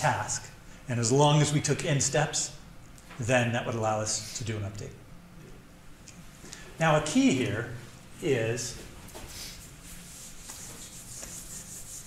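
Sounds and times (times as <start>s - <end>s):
eraser rubbing on whiteboard: 9.5s - 12.0s.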